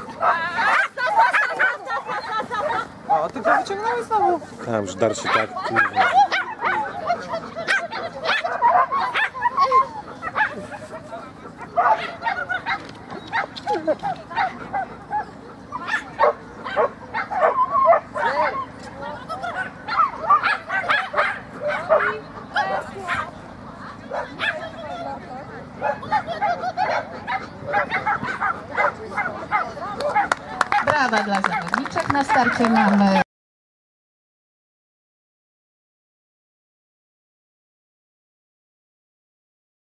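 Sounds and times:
small dog barking and yipping: 0:00.2 - 0:02.8, 0:05.2 - 0:11.0, 0:11.6 - 0:18.7, 0:19.4 - 0:23.3, 0:24.1 - 0:25.0, 0:25.8 - 0:30.8.

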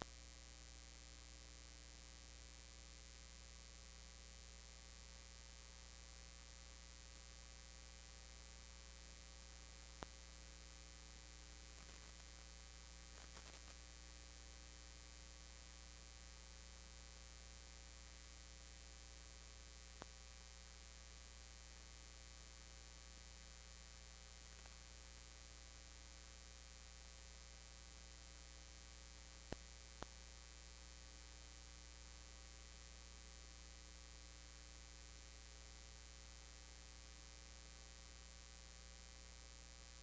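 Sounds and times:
electrical hum: 0:06.3 - 0:15.2.

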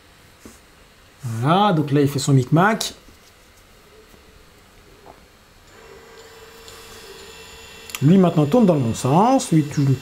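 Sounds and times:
small electric motors whining: 0:05.7 - 0:10.0.

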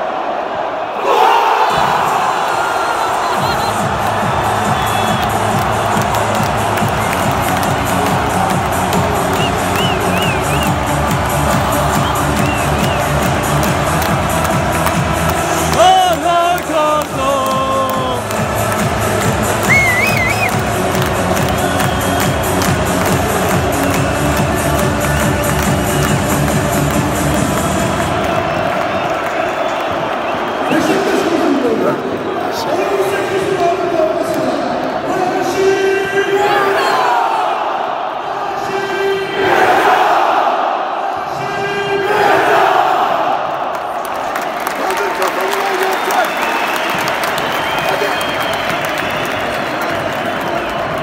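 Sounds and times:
crowd noise: 0:00.0 - 0:51.0.

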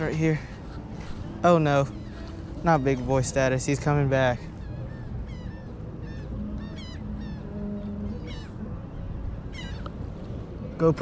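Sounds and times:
birds squawking: 0:00.0 - 0:10.4.

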